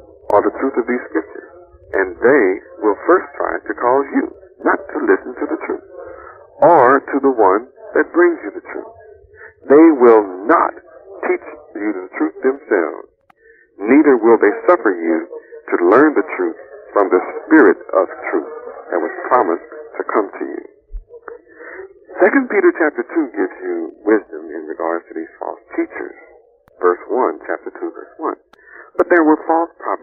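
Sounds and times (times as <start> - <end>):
man lecturing: 0.2 - 13.0, 13.8 - 20.6, 21.4 - 26.2, 26.8 - 30.0.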